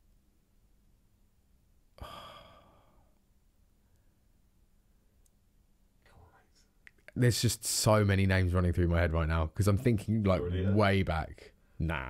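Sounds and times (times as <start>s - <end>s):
man sighing: 2.0s - 3.1s.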